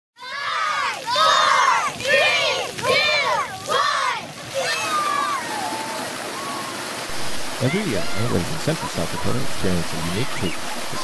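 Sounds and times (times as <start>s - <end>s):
children shouting and cheering: 0.2s - 11.0s.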